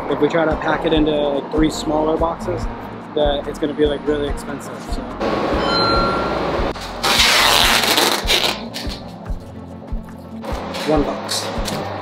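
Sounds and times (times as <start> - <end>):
packing tape screeching off roll: 6.8 - 9.1
background music with beat: 7.8 - 12.0.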